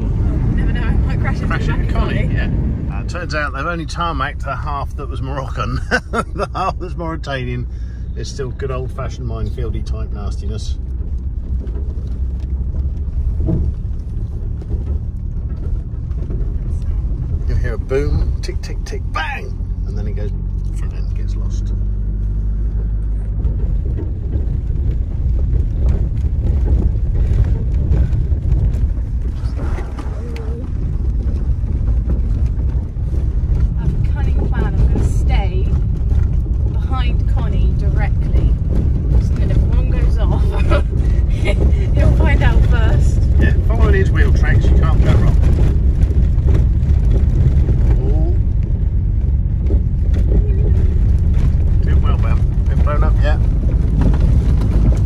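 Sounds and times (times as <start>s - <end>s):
car driving over bumpy track: 0.0s - 55.0s.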